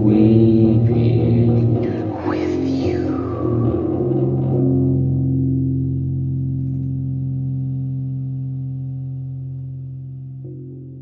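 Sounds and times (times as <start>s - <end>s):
distorted guitar and fuzz bass chord: 0.0s - 11.0s.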